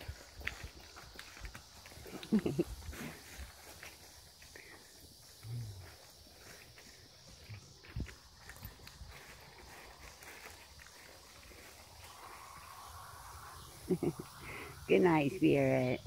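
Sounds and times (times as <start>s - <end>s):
hoof steps on dirt path: 0.0s - 13.7s.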